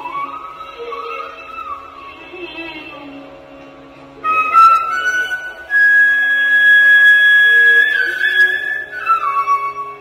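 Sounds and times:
bamboo flute long note: 0:04.2 - 0:10.0.

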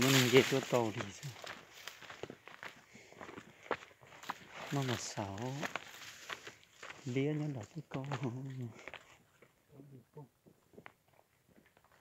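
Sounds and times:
man's voice: 0:00.0 - 0:01.5, 0:04.6 - 0:05.8, 0:07.0 - 0:08.9
footsteps on stony dirt trail: 0:00.0 - 0:09.6, 0:10.4 - 0:12.0.

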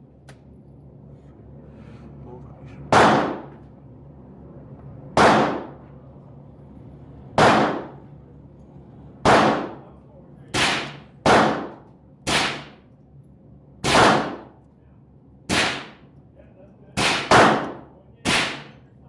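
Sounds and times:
rifle shots: 0:02.9 - 0:03.5, 0:05.2 - 0:05.8, 0:07.4 - 0:08.0, 0:09.2 - 0:09.8, 0:10.6 - 0:12.8, 0:13.8 - 0:14.5, 0:15.5 - 0:16.0, 0:17.0 - 0:18.8.

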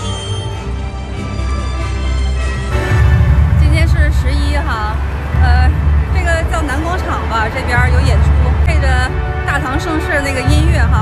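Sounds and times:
background music with bass hum: 0:00.0 - 0:11.0
road traffic rumble: 0:00.0 - 0:11.0
woman speaking: 0:03.6 - 0:11.0.

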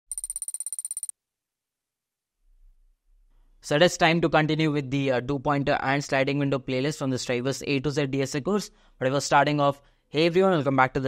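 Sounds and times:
electronic bell-like trill: 0:00.1 - 0:01.1.

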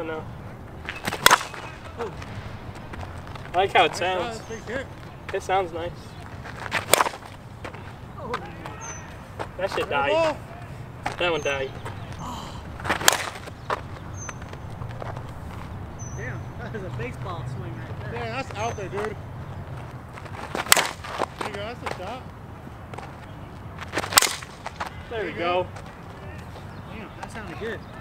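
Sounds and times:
softball bat hitting ball: 0:00.9 - 0:02.3, 0:06.7 - 0:09.9, 0:12.8 - 0:14.9, 0:20.5 - 0:22.0, 0:23.9 - 0:25.0.

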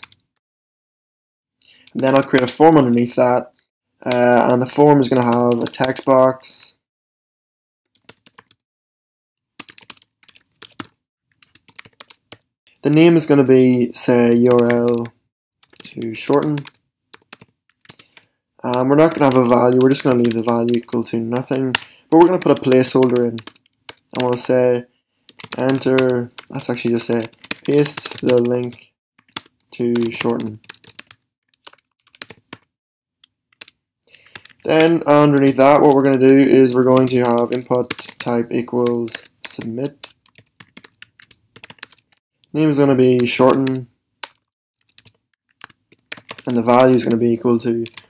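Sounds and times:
computer keyboard typing: 0:05.1 - 0:06.1, 0:07.9 - 0:08.6, 0:09.6 - 0:13.1, 0:14.2 - 0:24.6, 0:25.3 - 0:42.2, 0:43.2 - 0:48.0.

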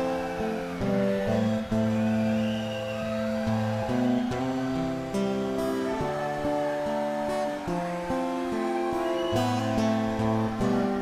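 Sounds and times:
fingerpicked acoustic guitar: 0:00.0 - 0:11.0.

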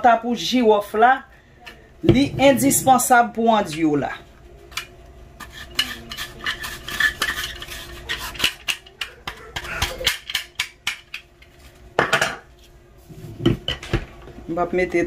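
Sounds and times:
scrape against glass bowl: 0:05.4 - 0:08.6.

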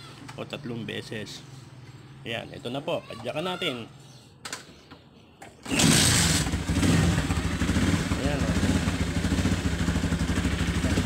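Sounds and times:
motorcycle kick-start: 0:05.6 - 0:08.9
motorcycle engine idling: 0:06.4 - 0:11.0.

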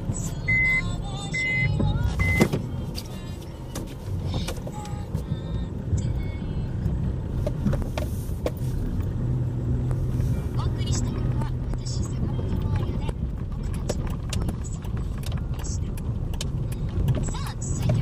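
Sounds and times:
car engine and road noise: 0:00.0 - 0:18.0
high beep: 0:00.4 - 0:02.5.

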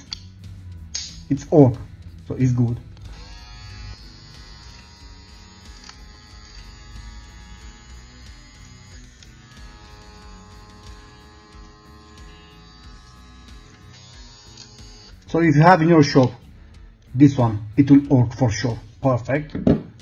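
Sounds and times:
soft background music: 0:00.0 - 0:20.0
hair clipper motor humming: 0:02.8 - 0:15.3.

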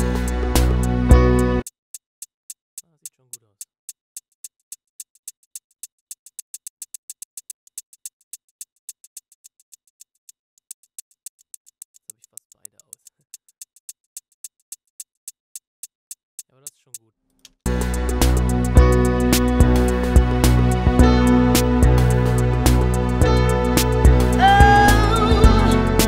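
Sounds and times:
electronic hi-hat ticks: 0:00.0 - 0:26.0.

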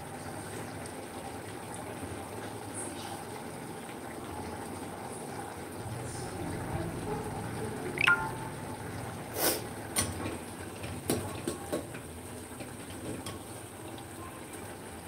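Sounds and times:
curry simmering and bubbling: 0:00.0 - 0:07.7, 0:09.6 - 0:15.0.

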